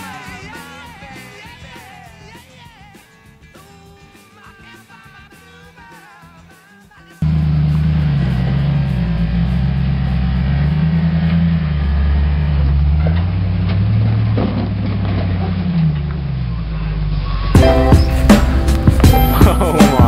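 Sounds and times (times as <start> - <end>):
truck engine at low revs: 7.2 - 20.0.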